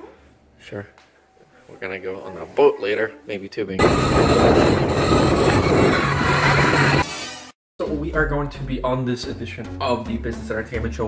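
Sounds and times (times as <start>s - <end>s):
wind: 0.0s - 7.1s
boat motor humming: 3.8s - 7.0s.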